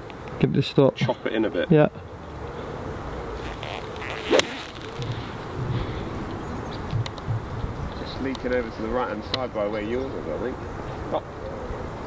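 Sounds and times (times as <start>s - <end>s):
faint outdoor background noise: 0.0s - 12.0s
golf club striking ball: 4.0s - 5.5s.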